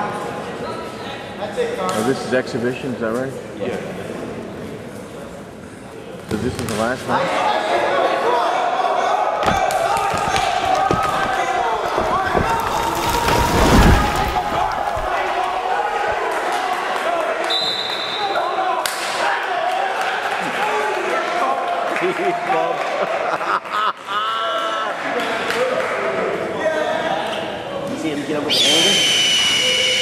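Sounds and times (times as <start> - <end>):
spectators shouting and talking: 7.2 - 22.7
bodies thudding on a mat: 9.4 - 16.2.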